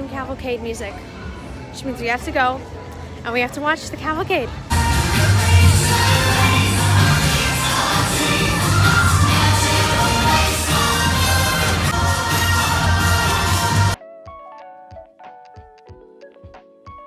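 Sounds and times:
crowd of onlookers: 4.7 - 14.0
parade music with heavy bass: 4.7 - 14.0.

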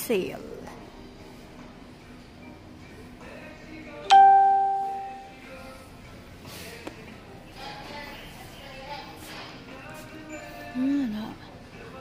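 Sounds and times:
bell-like chime ringing: 4.1 - 5.2.

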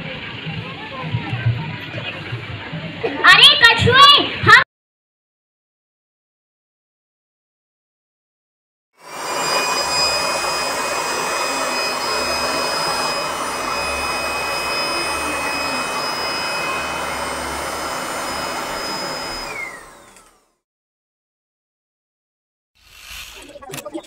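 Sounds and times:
hair dryer blowing with whine: 9.0 - 20.6.

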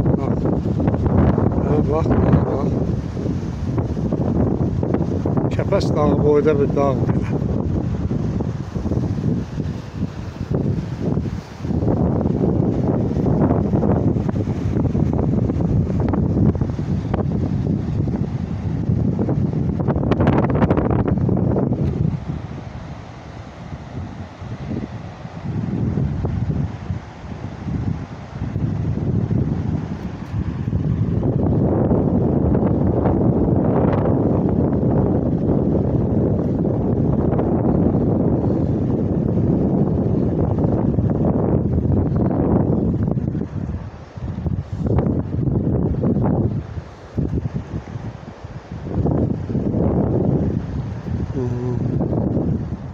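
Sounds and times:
wind buffeting microphone: 0.0 - 52.9.

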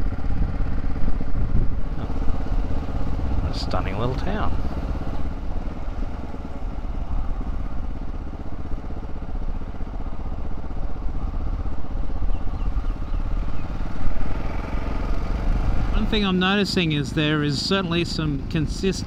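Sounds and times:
motorcycle engine rumbling: 0.0 - 19.0
wind and road noise: 0.0 - 19.0.

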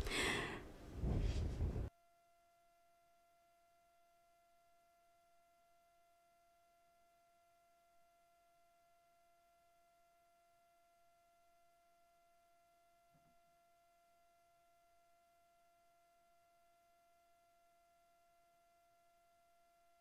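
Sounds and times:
faint steady tonal hum: 0.0 - 20.0.

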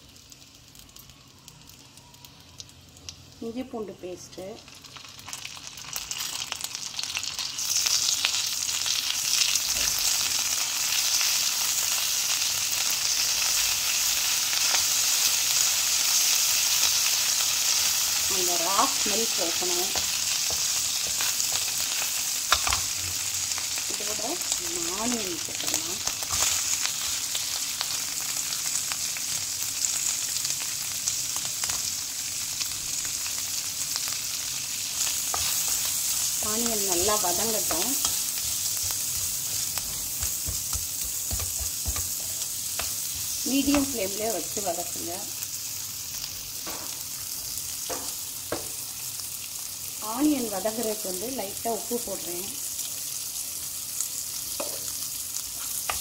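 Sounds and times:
butter sizzling in a pan: 0.0 - 56.0
onions frying: 0.0 - 56.0
spatula stirring: 35.0 - 44.0.

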